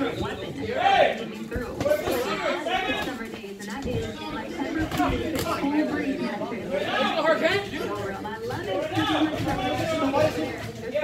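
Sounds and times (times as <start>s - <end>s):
overlapping voices chattering: 0.0s - 11.0s.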